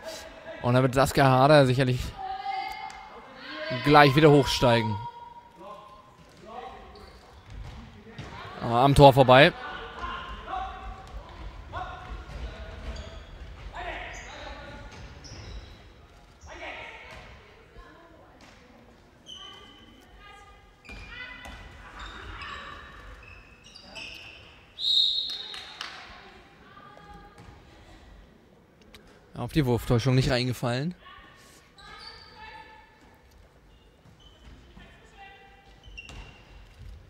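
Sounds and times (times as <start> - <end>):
ball bouncing on hall floor: 6.2 - 8.6, 10.0 - 15.7, 17.0 - 17.6, 20.8 - 23.2, 27.0 - 27.7, 35.6 - 37.0
referee's whistle blast: 24.8 - 25.6.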